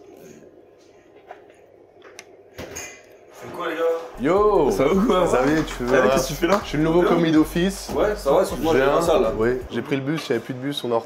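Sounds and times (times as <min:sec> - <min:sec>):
kitchen hum: 0:00.0 - 0:11.0.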